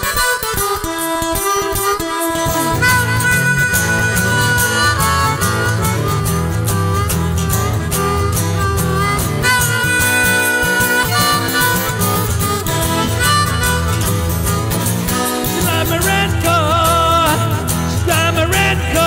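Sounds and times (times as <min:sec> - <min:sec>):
guitar and bass backing: 0:00.0 - 0:19.0
harmonica solo: 0:00.0 - 0:19.0.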